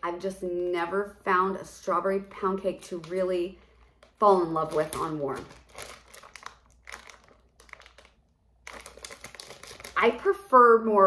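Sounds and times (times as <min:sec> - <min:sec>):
plastic bag crinkling: 0:02.8 - 0:10.3.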